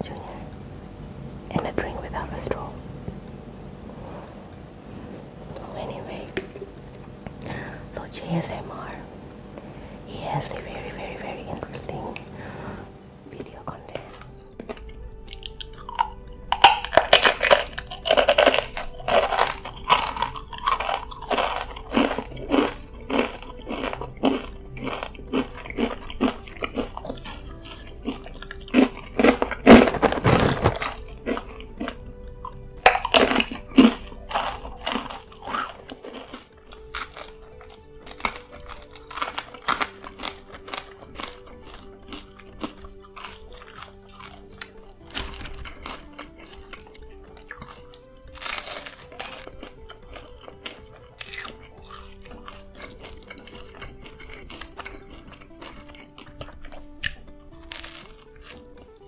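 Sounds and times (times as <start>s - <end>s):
soft speech: 0.0s - 0.5s, 1.5s - 2.8s, 5.5s - 6.5s, 7.9s - 9.1s, 10.1s - 12.3s, 13.3s - 14.1s
faint music: 0.0s - 59.0s
tortilla chips crunching: 13.5s - 59.0s.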